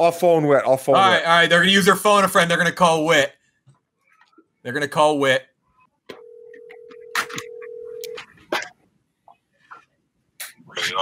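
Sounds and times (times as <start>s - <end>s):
telephone ringback tone: 6.1s - 8.2s.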